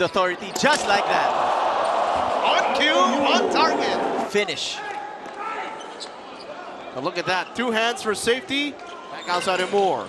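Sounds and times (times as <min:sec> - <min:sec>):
arena crowd murmur: 0:01.0 - 0:04.4.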